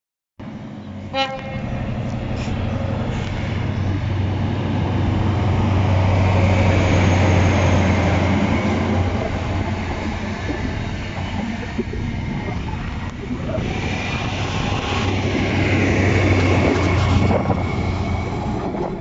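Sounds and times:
train coaches rumbling by: 0.4s - 19.0s
diesel train engine pulling hard: 0.5s - 19.0s.

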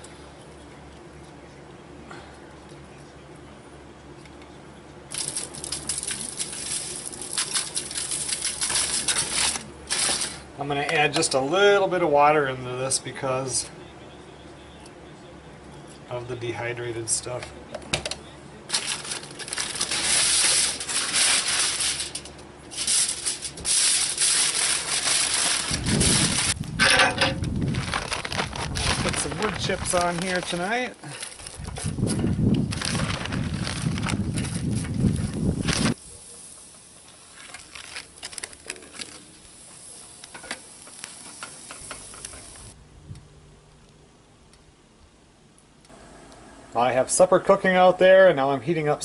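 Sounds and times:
aluminium foil crinkling: 5.1s - 10.5s, 18.7s - 42.8s.

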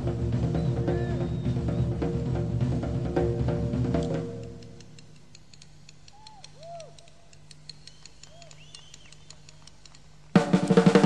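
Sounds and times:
faint low hum: 0.0s - 11.0s
whistled notes: 0.4s - 2.2s, 6.1s - 9.7s
faint ticks: 4.0s - 10.4s.

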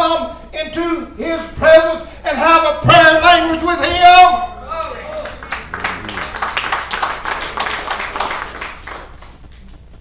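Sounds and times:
congregation clapping: 4.8s - 9.8s.

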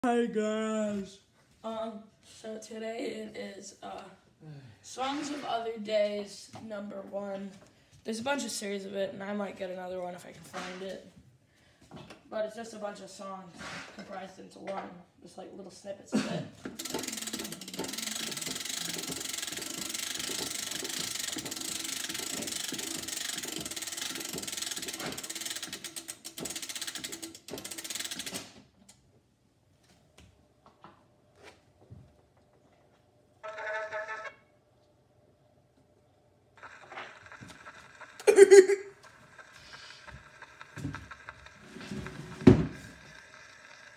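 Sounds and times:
crank winding ratcheting clatter: 16.8s - 28.6s, 33.4s - 34.4s, 36.6s - 38.3s, 39.0s - 43.9s.

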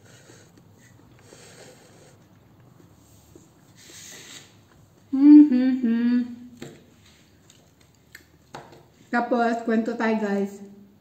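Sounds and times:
woman humming: 5.1s - 6.6s.

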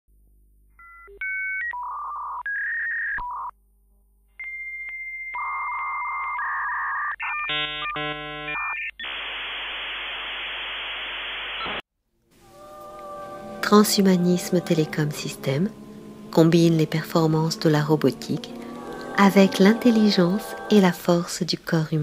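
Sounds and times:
warbling modem handshake tones: 4.4s - 11.8s
hissing static: 9.0s - 11.8s
long steady high tone: 12.4s - 21.4s.

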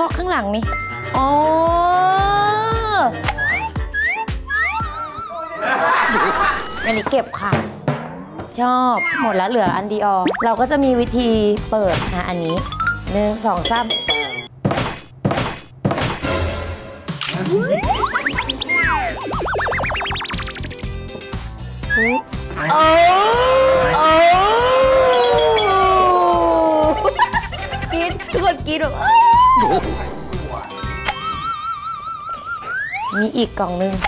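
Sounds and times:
background music: 0.0s - 7.3s, 8.9s - 14.6s, 16.0s - 34.0s
wavering electronic tone: 17.6s - 20.8s, 30.5s - 33.2s.

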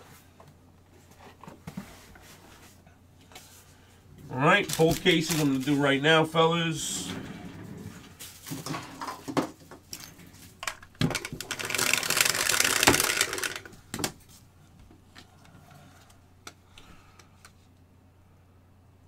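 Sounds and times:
dice rattling in plastic shaker: 11.2s - 13.8s.

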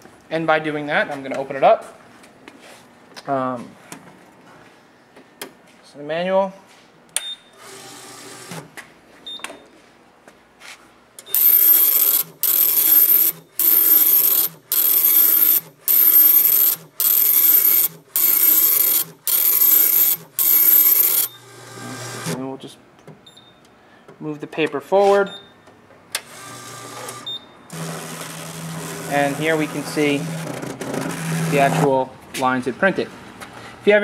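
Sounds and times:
printer printing: 7.6s - 8.7s, 11.3s - 22.4s, 26.2s - 31.8s.

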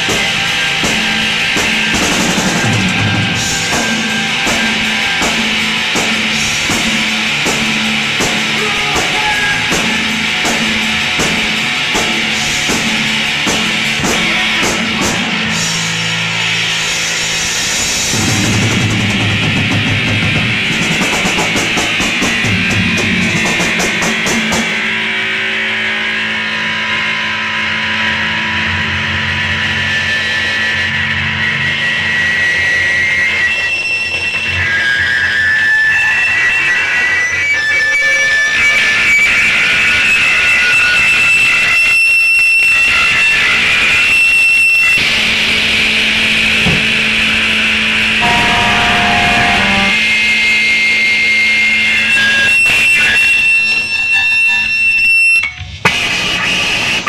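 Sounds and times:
steady low drone: 0.0s - 37.1s, 43.0s - 57.0s
distorted bass and guitar noise: 0.0s - 57.0s
high whistling feedback tones: 31.7s - 45.2s, 48.0s - 55.7s.

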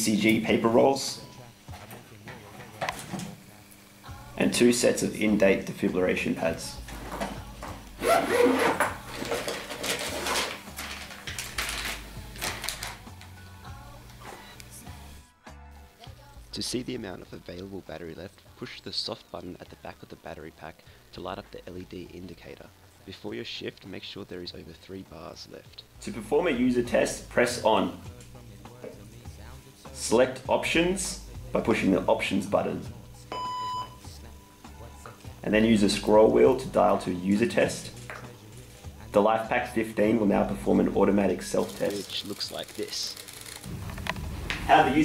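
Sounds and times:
plastic packet rustling: 9.0s - 13.4s, 41.6s - 44.9s
electronic beep: 33.3s - 34.0s.

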